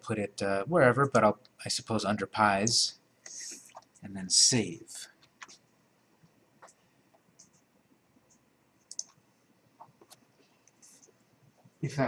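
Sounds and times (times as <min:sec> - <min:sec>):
computer mouse clicking: 0:06.6 - 0:07.7, 0:08.3 - 0:09.2.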